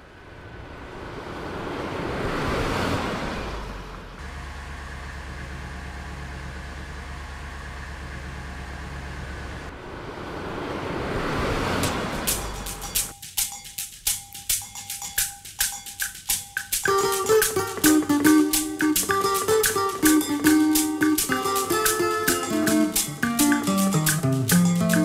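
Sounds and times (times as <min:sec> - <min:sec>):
low engine hum: 0:00.0 - 0:13.1
rising whoosh: 0:09.7 - 0:13.0.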